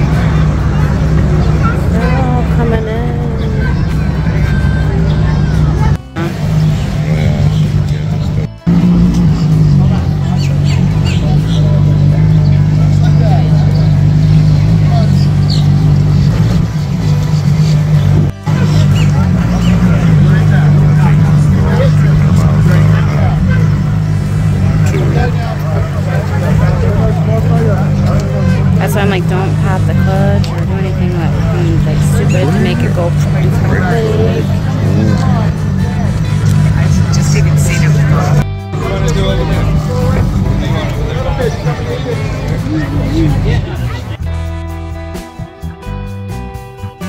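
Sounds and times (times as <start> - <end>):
car engine running: 0.0 - 44.2
people talking: 0.0 - 44.3
crowd chatter: 0.0 - 47.0
music: 0.0 - 47.0.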